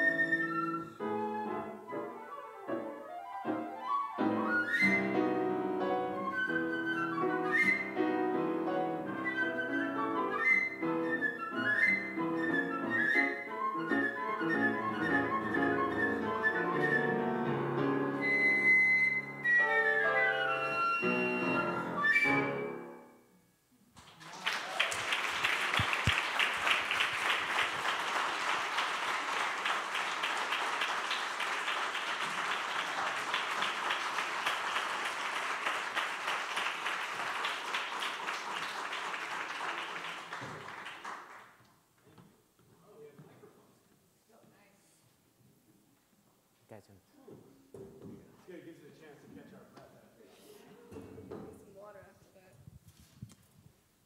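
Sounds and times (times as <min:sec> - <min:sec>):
flute: 0:00.0 - 0:05.4, 0:06.1 - 0:08.2, 0:09.0 - 0:23.0
grand piano: 0:00.0 - 0:23.6, 0:25.5 - 0:41.6
audience applause: 0:24.0 - 0:41.6.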